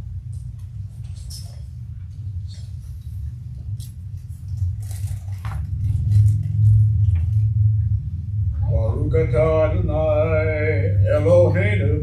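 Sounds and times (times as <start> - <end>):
low handling rumble: 0.0 - 12.0.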